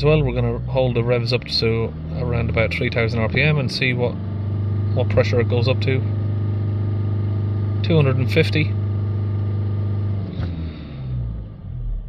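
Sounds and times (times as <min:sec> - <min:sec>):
diesel engine droning: 0:00.0 - 0:12.0.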